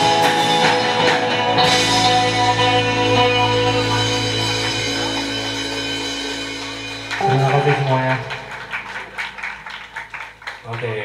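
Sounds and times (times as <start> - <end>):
band chord ringing: 0.0 - 10.4
audience clapping: 0.0 - 11.0.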